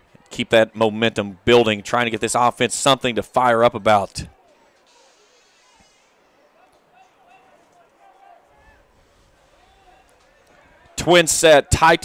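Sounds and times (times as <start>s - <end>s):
open-air stadium background: 0.0s - 12.0s
faint distant voices: 3.6s - 12.0s.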